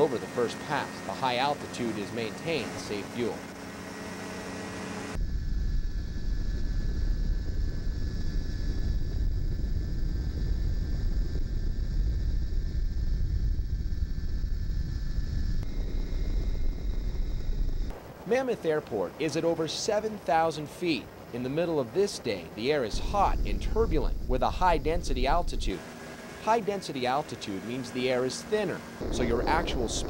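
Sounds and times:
aircraft engine drone: 0:00.0 - 0:30.0
wind rumble on microphone: 0:05.2 - 0:18.0, 0:22.9 - 0:25.8, 0:29.0 - 0:30.0.

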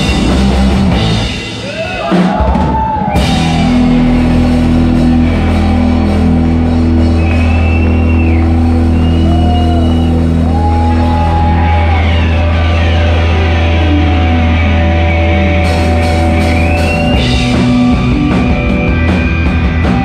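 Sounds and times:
bass and guitar drone: 0:00.0 - 0:20.0.

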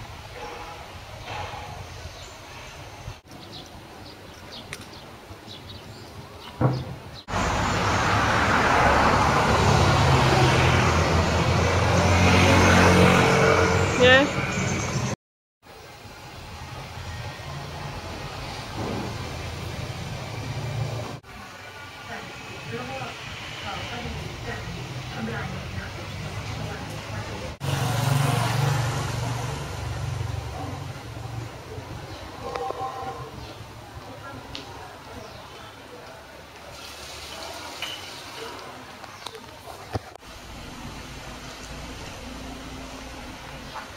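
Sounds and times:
street traffic: 0:00.0 - 0:43.9
vehicle engine revving: 0:07.3 - 0:15.2, 0:25.5 - 0:32.8.

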